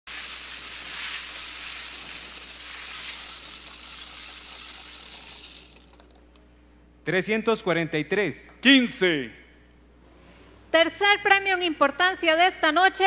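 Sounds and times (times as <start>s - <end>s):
lottery balls rattling in spinning drums: 0.1s - 6.1s.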